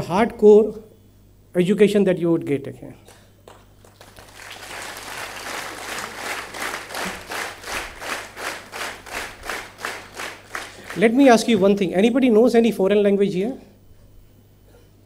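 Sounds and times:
audience applauding: 0:03.5 - 0:11.4.

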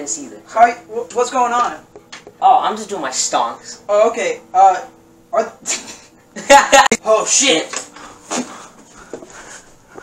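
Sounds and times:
faint breathing: 0:07.9 - 0:10.0.

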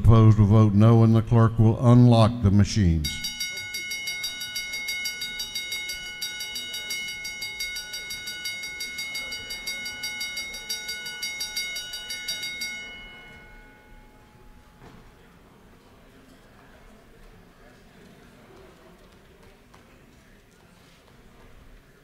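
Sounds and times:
bell ringing rapidly: 0:03.0 - 0:14.8.

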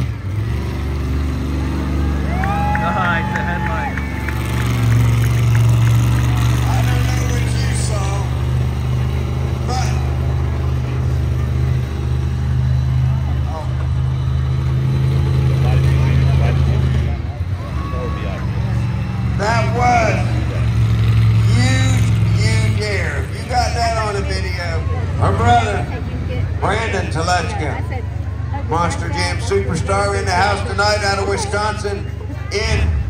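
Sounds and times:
monster truck engine running: 0:00.0 - 0:33.0
crowd shouting: 0:01.7 - 0:07.7, 0:17.4 - 0:20.2.

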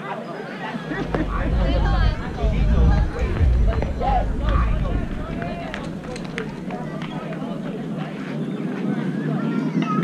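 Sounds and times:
voices calling and chattering: 0:00.6 - 0:08.4
low rumble: 0:00.8 - 0:08.2
faint clicks: 0:00.9 - 0:08.1.

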